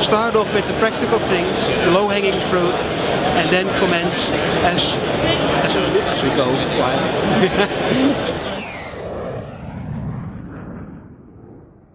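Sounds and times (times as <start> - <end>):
deep rumbling boom: 8.4 - 11.9.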